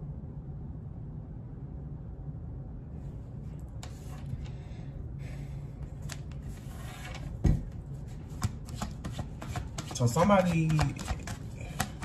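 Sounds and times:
low steady hum: 0.0s - 12.0s
cards being shuffled: 5.9s - 12.0s.

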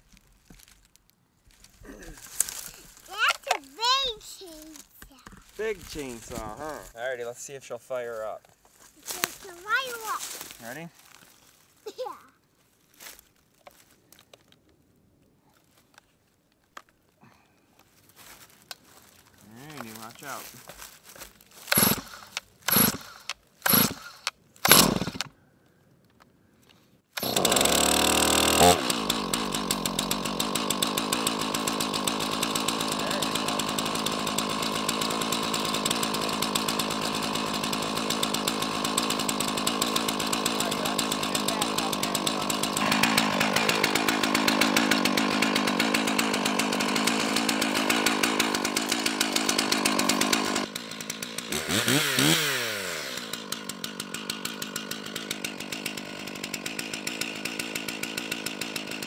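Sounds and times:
chainsaw engine idling and revving: 1.8s - 4.3s, 5.6s - 7.1s, 9.0s - 10.8s, 21.6s - 25.3s, 27.2s - 59.0s
chainsaw starter cord yanks: 2.4s - 6.9s, 21.6s - 25.4s, 27.2s - 59.0s.

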